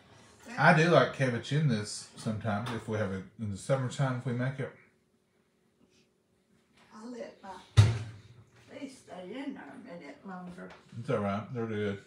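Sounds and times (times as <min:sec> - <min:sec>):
sharp thump: 0:07.8 - 0:08.3.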